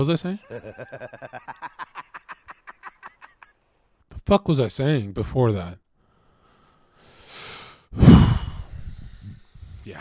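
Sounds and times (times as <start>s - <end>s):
man breathing in: 6.0s - 9.8s
man sighing heavily: 8.0s - 9.5s.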